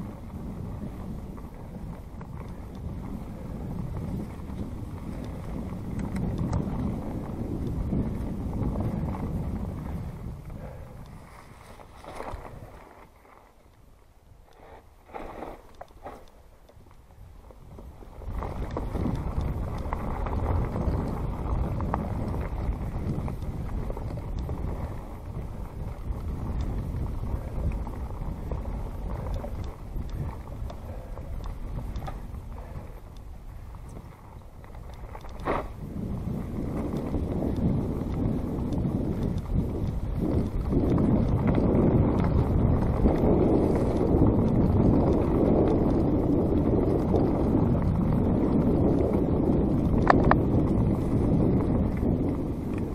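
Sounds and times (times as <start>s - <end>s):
bike clicks and rattles: 0.0s - 52.9s
wind buffeting microphone: 0.0s - 52.9s
tyres rolling over dirt and leaves: 11.2s - 13.7s, 14.6s - 45.6s.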